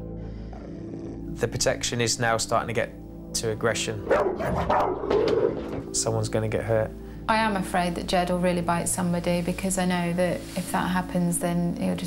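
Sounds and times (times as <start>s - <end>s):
dog growling and barking: 0.4s - 1.4s, 4.0s - 5.9s.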